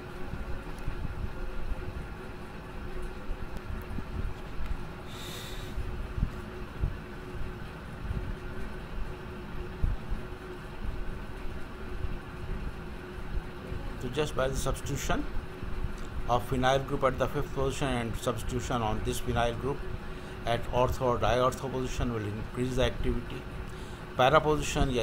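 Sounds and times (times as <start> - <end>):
faint steady hum: 0.0 - 25.0.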